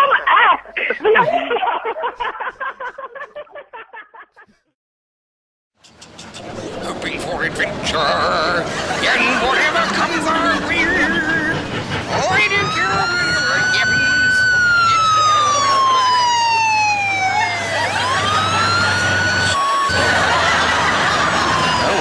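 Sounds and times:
low engine hum: 0:05.8 - 0:22.0
motorcycle siren wailing: 0:08.0 - 0:22.0.

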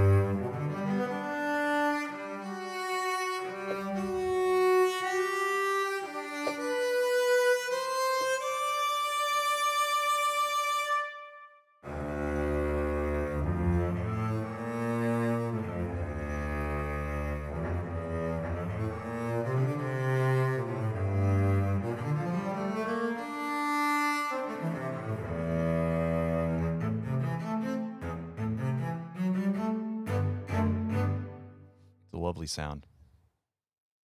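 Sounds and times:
bowed cello melody: 0:00.0 - 0:31.7.

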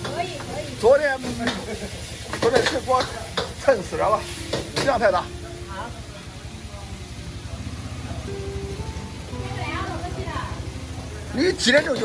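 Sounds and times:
noodles sizzling in a wok: 0:00.0 - 0:12.0.

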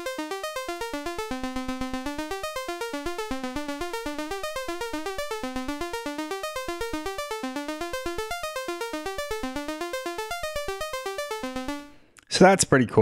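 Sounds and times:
sequenced sawtooth synth notes: 0:00.0 - 0:12.0.

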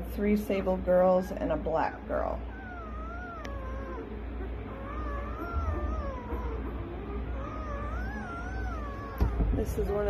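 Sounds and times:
puppies squealing: 0:01.6 - 0:10.0.

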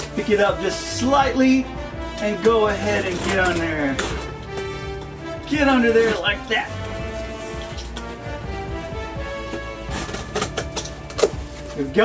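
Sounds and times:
background music with steady tones: 0:00.0 - 0:12.0
cardboard scraping and tearing: 0:02.2 - 0:04.9, 0:09.4 - 0:11.9.

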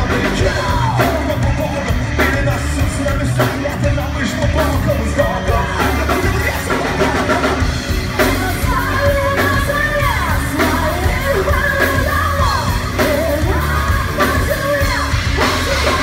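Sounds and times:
person singing: 0:00.0 - 0:16.0
rock band playing live: 0:00.0 - 0:16.0.

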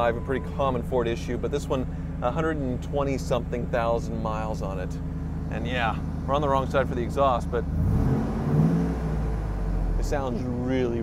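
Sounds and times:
engine idling and revving: 0:00.0 - 0:11.0.

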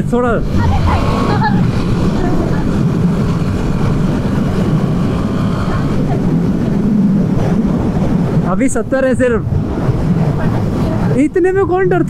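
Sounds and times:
wind rush on microphone: 0:00.0 - 0:12.0.

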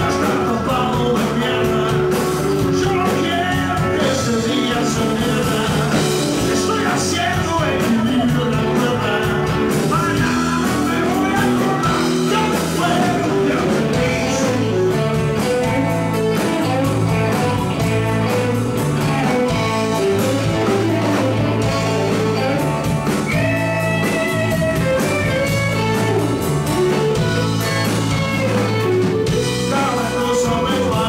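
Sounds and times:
bass guitar: 0:00.0 - 0:31.0
drum kit: 0:00.0 - 0:31.0
electric guitar lines: 0:00.0 - 0:31.0.

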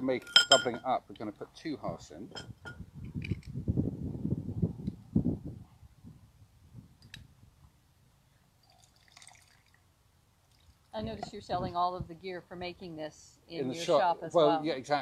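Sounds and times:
liquid dripping: 0:08.6 - 0:09.8.

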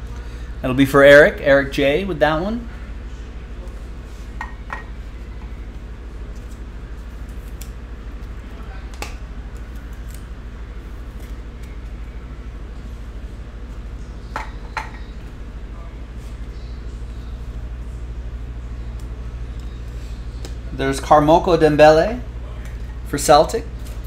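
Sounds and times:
low electrical hum: 0:00.0 - 0:24.0.

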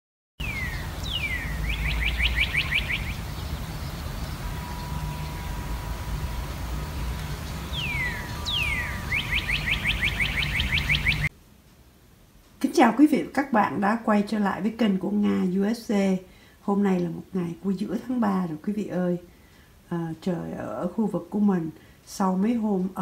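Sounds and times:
songbird singing: 0:00.4 - 0:11.3
low steady rumble: 0:00.4 - 0:16.5.

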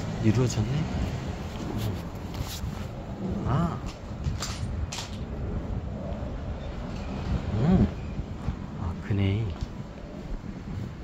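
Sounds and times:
low rumble on microphone: 0:00.8 - 0:11.0.

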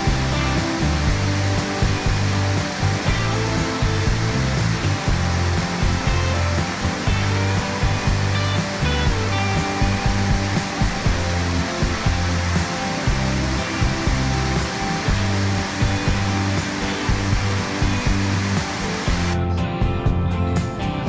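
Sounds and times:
waterfall roaring: 0:00.0 - 0:19.4
music playing: 0:00.0 - 0:21.0.

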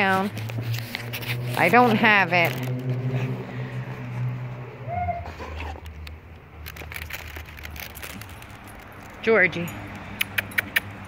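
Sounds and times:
rustling: 0:00.0 - 0:03.0, 0:06.6 - 0:09.3
dog whining: 0:04.8 - 0:05.8.

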